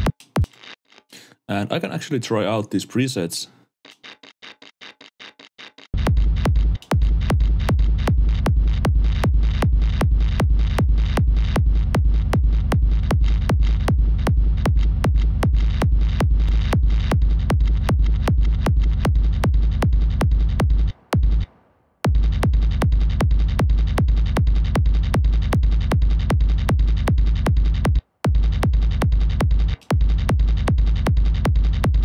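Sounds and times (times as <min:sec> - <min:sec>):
distorted gated kick drum pulse: 0:00.0 - 0:00.5, 0:06.0 - 0:32.0.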